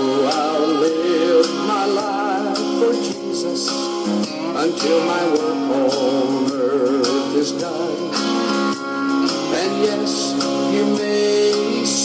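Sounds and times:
person singing with vibrato: 0:00.0 - 0:08.7, 0:09.3 - 0:12.0
guitar and band accompaniment: 0:00.0 - 0:12.0.

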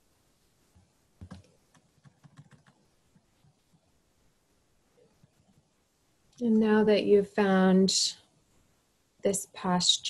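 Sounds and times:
faint keyboard typing: 0:00.7 - 0:04.0, 0:05.0 - 0:06.4.

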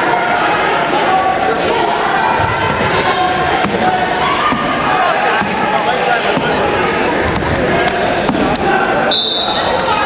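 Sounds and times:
chatter of many voices echoing: 0:00.0 - 0:10.0
whistle blast: 0:09.1 - 0:09.7.

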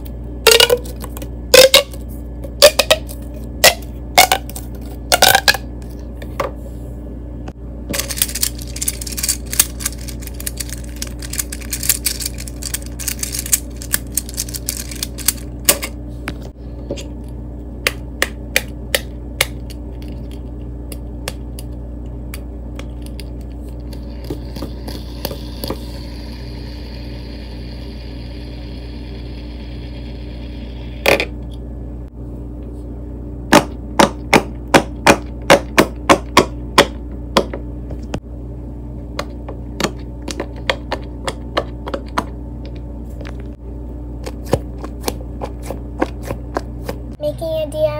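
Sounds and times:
fidget spinner whirring: 0:07.9 - 0:16.0.

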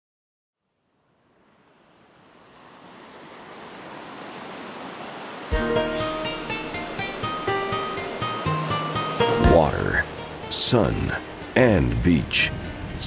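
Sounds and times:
ocean waves breaking: 0:01.0 - 0:13.0.

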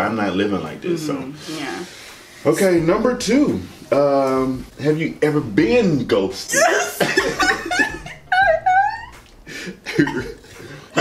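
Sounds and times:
woman laughing: 0:06.5 - 0:10.4.

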